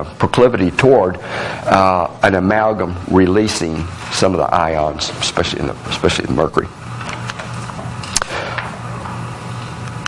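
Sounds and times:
person speaking: 0.0s - 6.8s
low hum and hiss: 0.0s - 10.0s.

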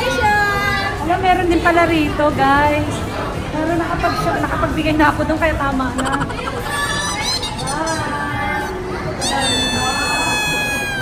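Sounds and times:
high-pitched voice-like squeal: 6.3s - 11.0s.

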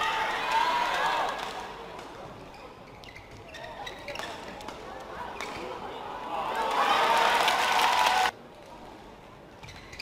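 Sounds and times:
spectators applauding and cheering: 6.5s - 8.3s.

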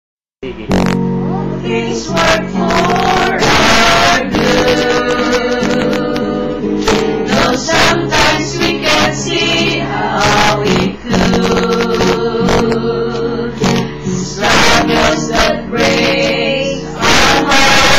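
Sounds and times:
acoustic guitar strumming: 0.4s - 17.9s
group singing: 1.6s - 17.9s.

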